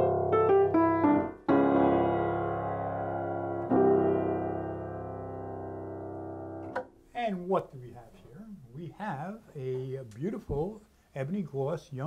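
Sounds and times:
piano chord ringing: 0.0 - 6.8
man's voice: 7.2 - 12.0.

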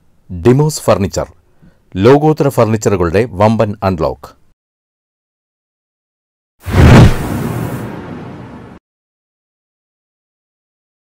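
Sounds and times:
loud low hit: 6.7 - 8.8.

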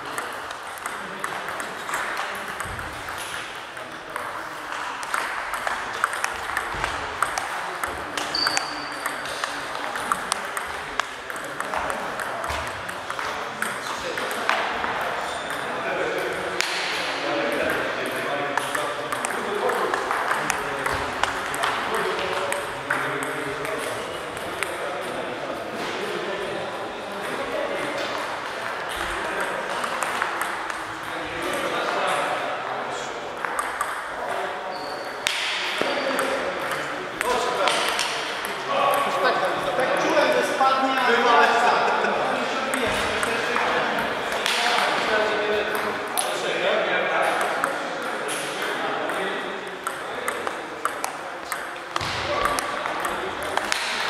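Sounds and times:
table tennis balls clicking: 0.0 - 25.3, 27.1 - 40.1, 42.6 - 46.4, 47.2 - 54.0.

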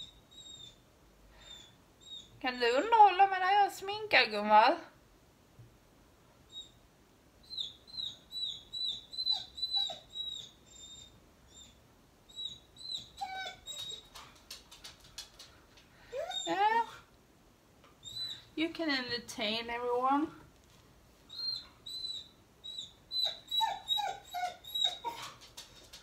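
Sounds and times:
dog whining: 0.0 - 0.8, 1.4 - 2.4, 6.5 - 6.8, 7.4 - 14.5, 16.1 - 17.1, 18.0 - 18.5, 21.3 - 26.0.

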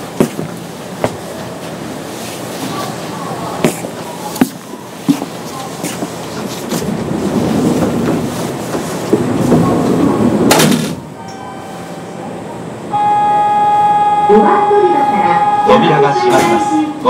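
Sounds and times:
train rumbling: 0.0 - 17.0
electronic bell tone: 11.2 - 12.2, 12.9 - 16.8.

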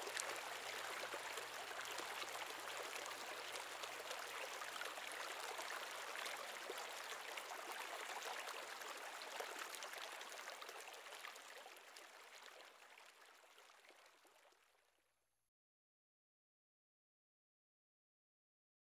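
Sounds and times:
stream water trickling and rushing: 0.0 - 14.8.

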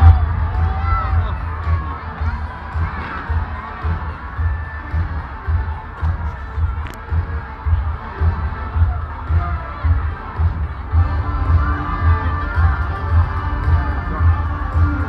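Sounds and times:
children shouting: 0.0 - 5.3
crowd voices: 0.0 - 15.0
deep steady thumping beat: 0.0 - 15.0.

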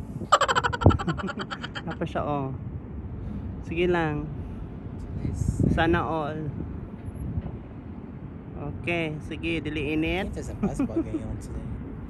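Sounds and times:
person giggling: 0.3 - 2.0.

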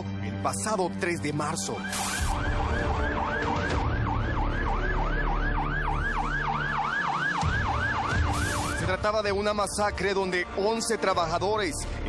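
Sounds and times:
siren yelping: 1.9 - 8.8.

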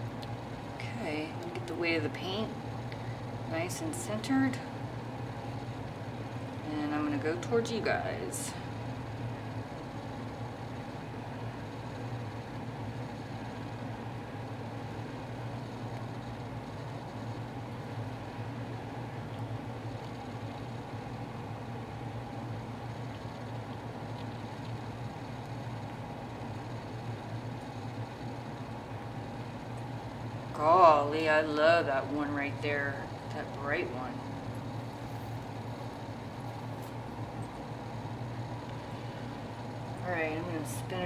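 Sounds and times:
low mechanical hum: 0.0 - 41.0.

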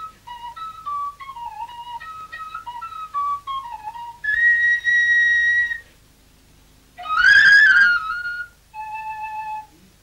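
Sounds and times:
solo flute: 0.0 - 6.0, 7.0 - 10.0.

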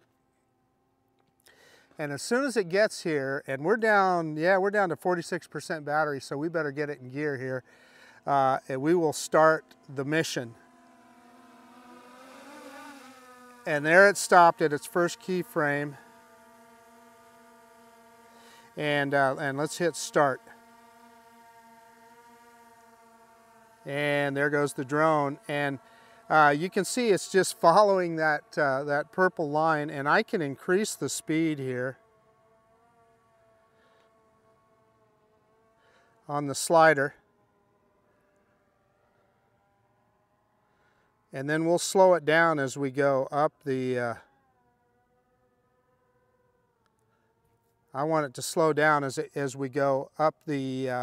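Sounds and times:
drone propellers humming: 0.0 - 51.0
person speaking: 13.7 - 16.0, 18.7 - 20.6, 23.9 - 31.9.

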